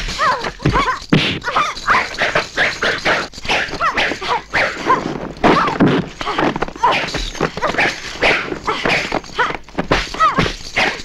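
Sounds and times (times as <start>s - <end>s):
punch and kick impacts: 3.5s - 11.0s.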